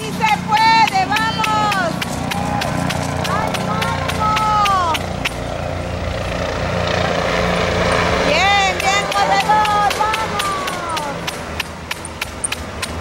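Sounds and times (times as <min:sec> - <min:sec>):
spectators cheering: 0:00.0 - 0:05.8, 0:08.0 - 0:11.6
steady low drone: 0:00.0 - 0:13.0.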